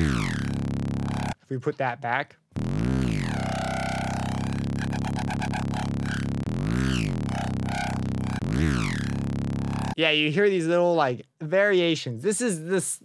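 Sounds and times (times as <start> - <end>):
fast stuttering high texture: 0.0 - 1.4, 2.6 - 10.0
heavy synth bass: 0.0 - 1.4, 2.6 - 10.0
rising and falling pitch swoops: 0.0 - 1.4, 2.6 - 10.0.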